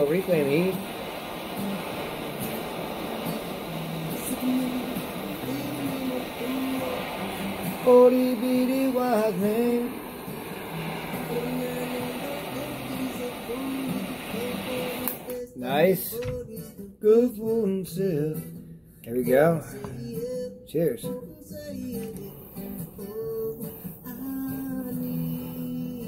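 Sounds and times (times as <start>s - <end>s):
torch flame hissing: 0.0s - 16.2s, 22.1s - 26.0s
background music: 0.0s - 17.0s.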